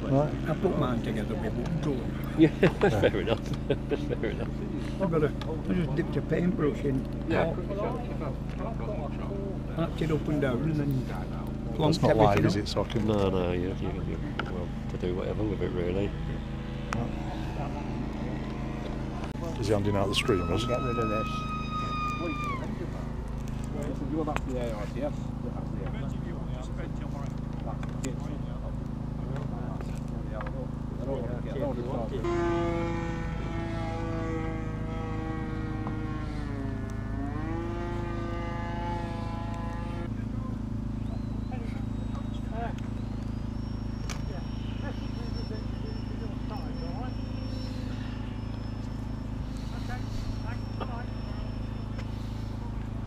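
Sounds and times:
low steady hum: 0.0s - 53.0s
motor droning: 0.0s - 53.0s.

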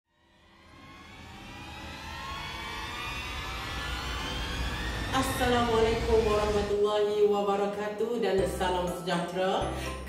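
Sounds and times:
rising swell of layered tones: 0.1s - 7.0s
low rumble: 0.3s - 6.9s.

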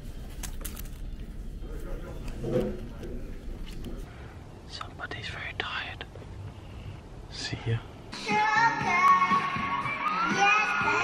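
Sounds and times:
man whispering: 4.7s - 6.1s, 7.3s - 8.0s.

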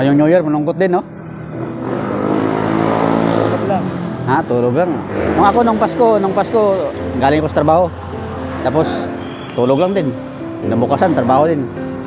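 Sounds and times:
motor vehicle passing: 1.0s - 12.0s.

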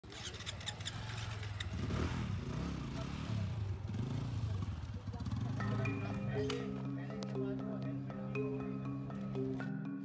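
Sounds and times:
motorcycle engines running: 0.1s - 9.8s.

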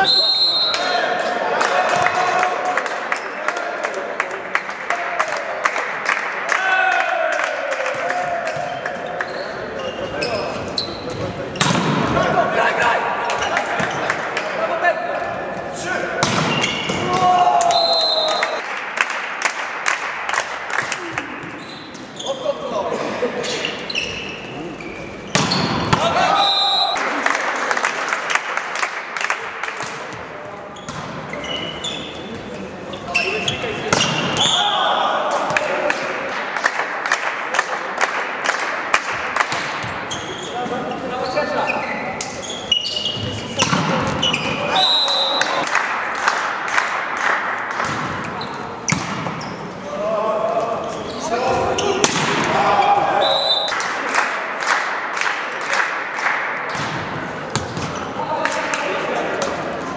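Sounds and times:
volleyball bouncing and being struck: 11.1s - 12.2s, 16.2s - 17.2s, 25.3s - 26.2s, 47.7s - 49.5s
players calling out: 20.9s - 27.6s.

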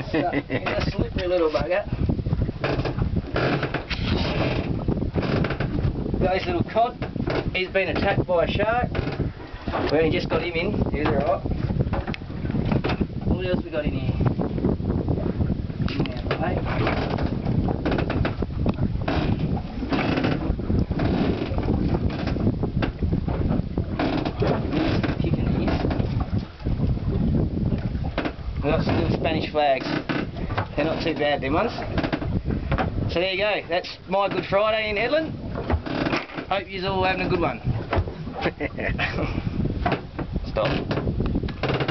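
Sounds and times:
wind rumbling on microphone: 0.0s - 41.9s.

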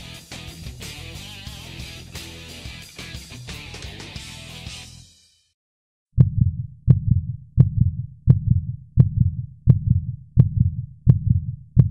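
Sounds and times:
heartbeat thuds: 6.2s - 11.9s.

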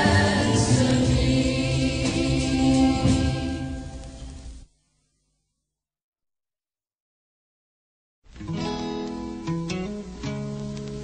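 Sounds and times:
choir singing gospel song: 0.0s - 4.2s.

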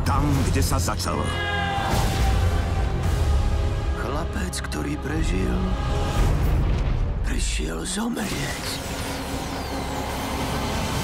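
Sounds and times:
falling whistles: 9.1s - 11.0s.

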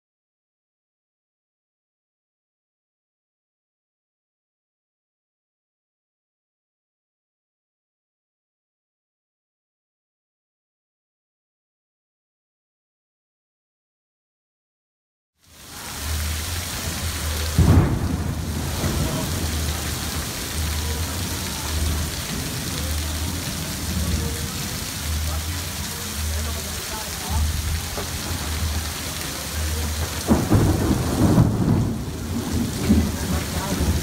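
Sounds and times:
heavy rain pouring: 15.4s - 34.0s
thunder crack: 16.8s - 24.8s, 27.8s - 34.0s.

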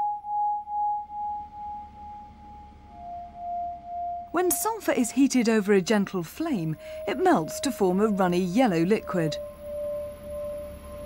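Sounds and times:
pulsing pure tone: 0.0s - 11.0s.

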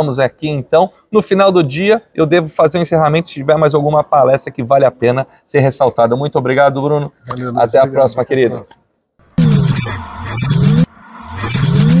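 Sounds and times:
rising sweep: 9.4s - 12.0s
whooshing sweep: 9.7s - 12.0s.

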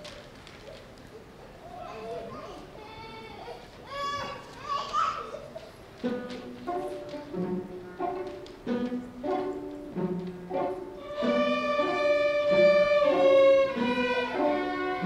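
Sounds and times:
string orchestra playing: 6.0s - 15.0s.

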